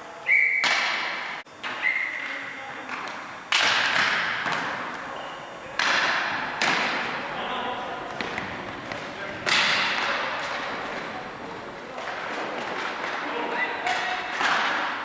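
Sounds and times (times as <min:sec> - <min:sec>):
hockey sticks cracking: 0:00.6 - 0:15.0.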